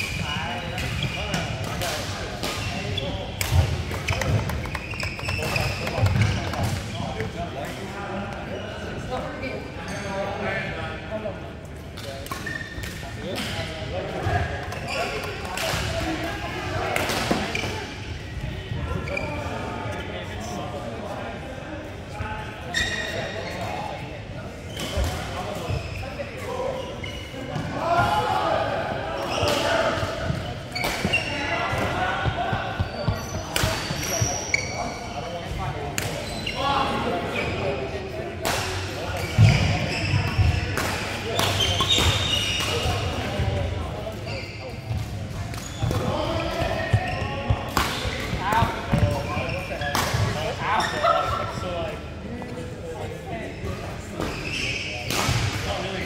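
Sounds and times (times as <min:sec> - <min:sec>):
shoes squeaking on court: 0:02.4 - 0:07.4, 0:12.3 - 0:12.9, 0:17.3 - 0:18.0, 0:24.7 - 0:27.6, 0:29.2 - 0:37.7, 0:39.1 - 0:40.7, 0:41.3 - 0:51.4, 0:53.5 - 0:55.1.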